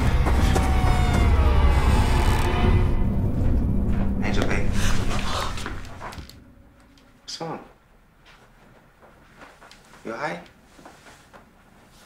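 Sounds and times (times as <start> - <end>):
low ominous drone: 0.0 - 7.4.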